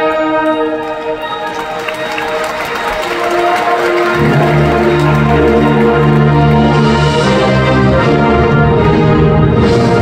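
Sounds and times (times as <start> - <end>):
concert band playing: 0.0 - 10.0
low instruments sustained notes: 0.0 - 10.0.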